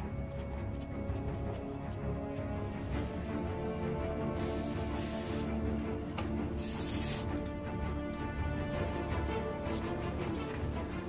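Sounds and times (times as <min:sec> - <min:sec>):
spray paint can spraying: 0:04.3 - 0:05.6, 0:06.6 - 0:07.3.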